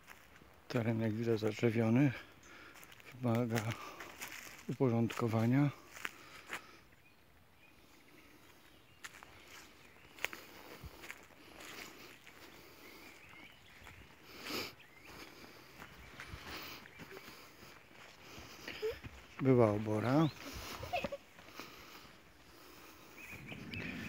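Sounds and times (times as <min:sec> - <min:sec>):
footsteps through dry grass: 0:00.0 - 0:06.8, 0:07.8 - 0:24.0.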